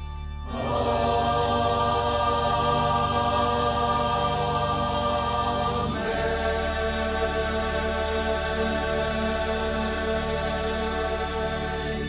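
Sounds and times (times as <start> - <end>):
mixed choir singing chant: 0.4 - 12.0.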